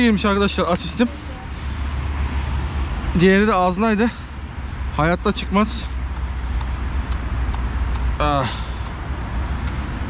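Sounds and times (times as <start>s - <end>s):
faint light ticks: 6.1s - 8.1s.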